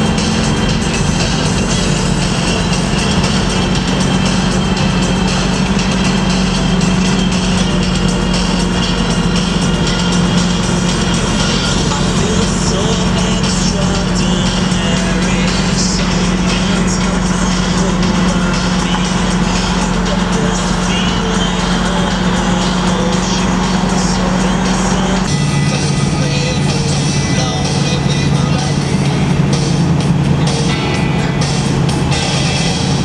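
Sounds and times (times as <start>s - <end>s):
car engine drone in cabin: 0.0s - 33.0s
song playing: 0.0s - 33.0s.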